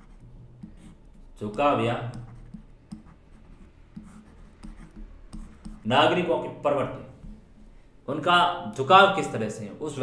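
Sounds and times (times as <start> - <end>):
stylus scratching on tablet: 0.0 - 6.1
man talking: 1.4 - 2.3, 5.8 - 7.2, 8.1 - 10.0.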